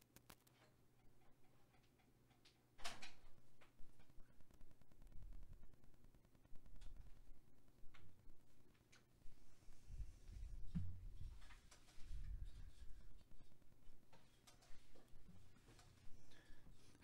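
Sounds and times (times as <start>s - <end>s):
faint clicks and knocks: 0.0s - 9.3s, 10.5s - 17.0s.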